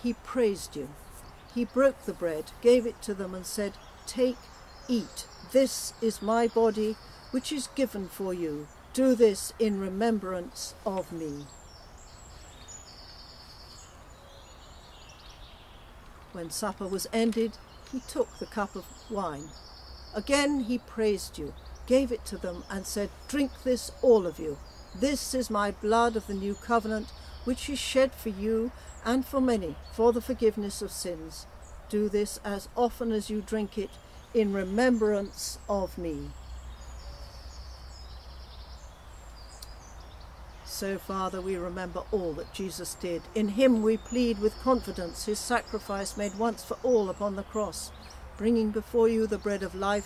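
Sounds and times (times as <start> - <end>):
faint distant birdsong: 0.0 - 50.0.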